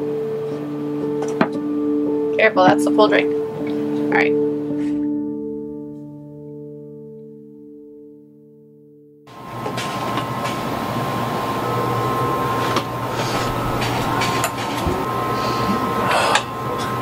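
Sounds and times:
machinery humming with high whine: 0.0 - 4.8, 9.3 - 17.0.

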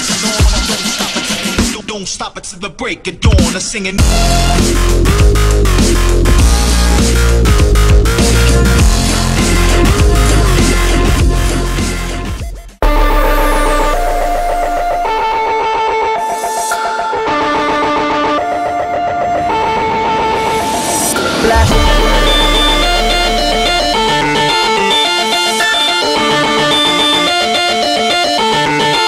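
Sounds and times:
music with held notes and pulsing beat: 0.0 - 1.9, 3.3 - 29.0.

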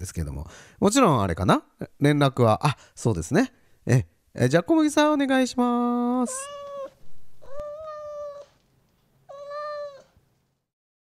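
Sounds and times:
high-pitched meow-like calls: 6.3 - 8.5, 9.3 - 10.1.

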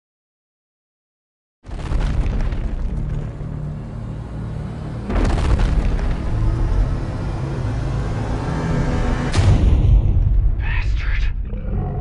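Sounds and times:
cinematic trailer music: 1.8 - 12.0
heavy boom hit: 5.1 - 6.7, 9.2 - 10.6.

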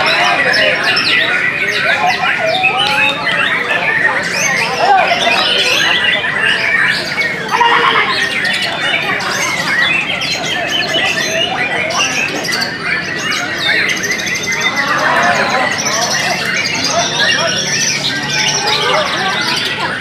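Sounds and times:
birds whistling and chirping: 0.0 - 20.0.

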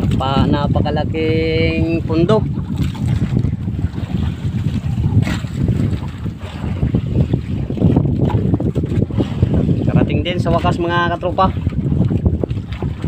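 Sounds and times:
water washing past boat: 0.0 - 13.0
wind buffeting microphone: 0.0 - 13.0.

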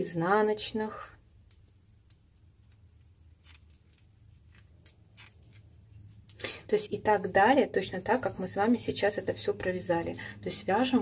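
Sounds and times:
knitting needles clicking: 1.4 - 6.5.

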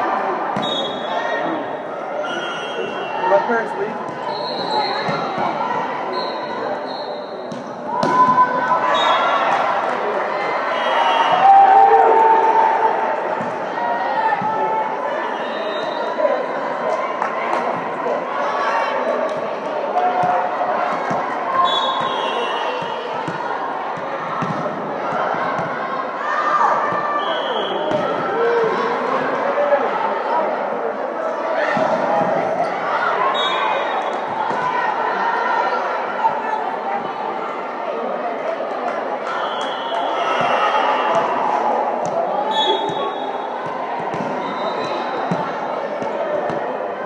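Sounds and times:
chatter of voices in hall: 0.0 - 47.0.

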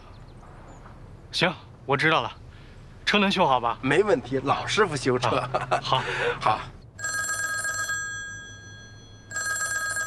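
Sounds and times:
telephone bell ringing: 7.0 - 10.0.

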